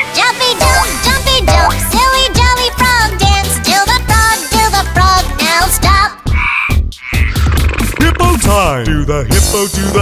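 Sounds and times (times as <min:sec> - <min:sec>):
children's song beat: 0:00.1 - 0:06.4, 0:07.1 - 0:10.0
raspy cartoon sound effects: 0:00.5 - 0:03.2.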